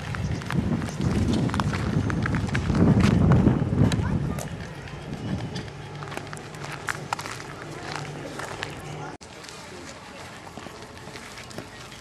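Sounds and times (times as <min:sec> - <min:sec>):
indistinct voices: 0:03.4 - 0:12.0.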